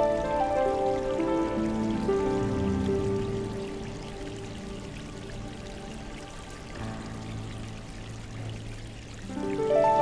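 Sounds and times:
soft background music: 0.0 - 10.0
water trickling: 0.0 - 10.0.

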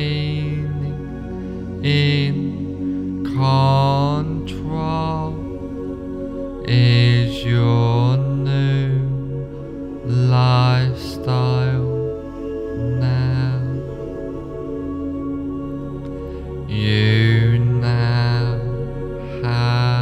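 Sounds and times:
low chanted vocal tones: 0.0 - 20.0
steady drone: 0.0 - 20.0.

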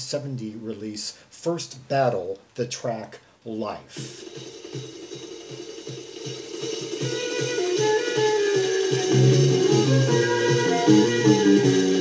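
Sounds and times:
cymbals and hi-hat: 3.9 - 12.0
fast drum beat: 3.9 - 12.0
flute melody: 6.7 - 12.0
bass guitar line: 6.9 - 12.0.

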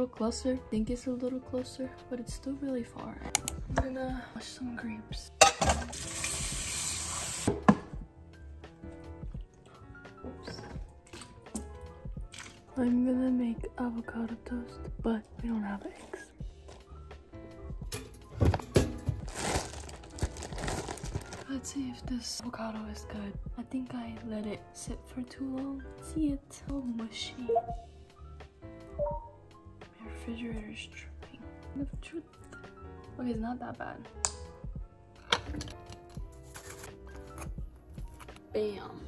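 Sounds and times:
soft background music: 0.0 - 39.0
plastic bag crinkling: 19.1 - 21.7
fork scraping on toast: 36.4 - 37.5.

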